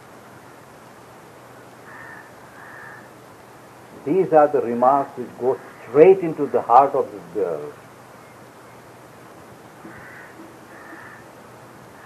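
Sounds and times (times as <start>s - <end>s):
steady recording hiss: 0.0s - 12.0s
short bird calls: 9.8s - 11.3s.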